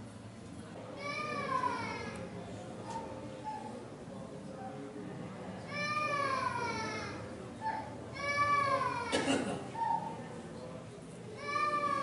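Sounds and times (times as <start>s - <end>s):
low background murmur: 0.0s - 12.0s.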